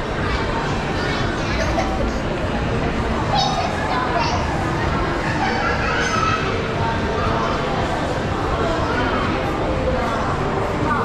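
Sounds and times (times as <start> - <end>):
shopping centre hubbub: 0.0 - 11.0.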